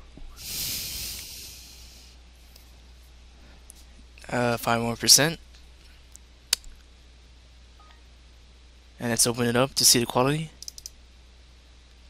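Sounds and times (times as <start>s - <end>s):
person exhaling into microphone: 0.4s - 2.2s.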